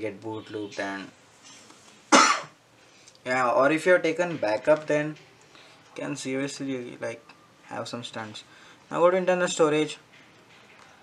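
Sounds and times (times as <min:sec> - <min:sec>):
man coughing: 0:02.1 - 0:02.6.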